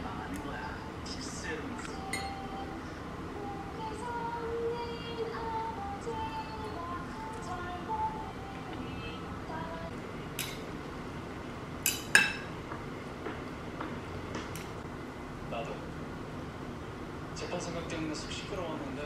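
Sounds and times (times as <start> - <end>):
utensils clinking on ceramic bowl: 2.1 - 2.4.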